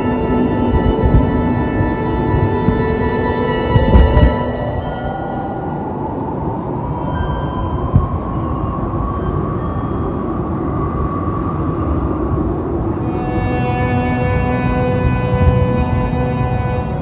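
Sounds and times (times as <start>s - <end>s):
faint rising whine: 0.0s - 17.0s
steady rumbling noise: 0.0s - 17.0s.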